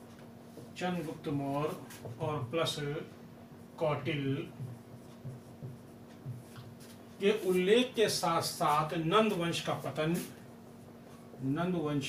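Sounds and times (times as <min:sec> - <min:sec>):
low steady hum: 0:00.0 - 0:12.0
marker pen writing on whiteboard: 0:04.0 - 0:07.6.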